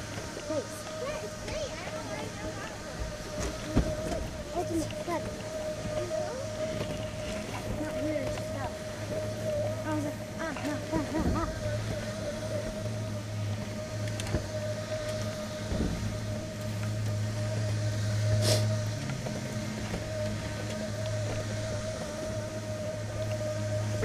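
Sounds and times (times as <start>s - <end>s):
conveyor lift hum and whine: 0.0s - 24.0s.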